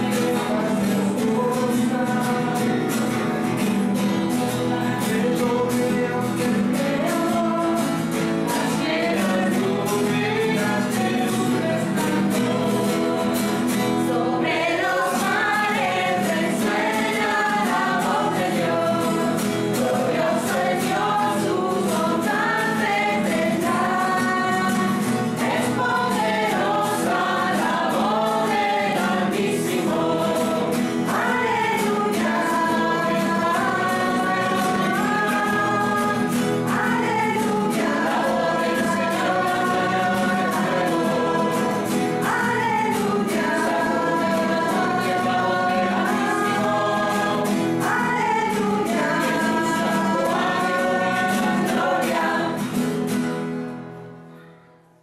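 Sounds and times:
choir singing a hymn: 0.0s - 53.3s.

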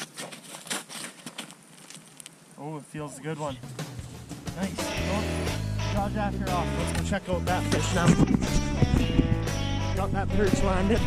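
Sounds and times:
snow crunching under boots: 0.0s - 2.4s.

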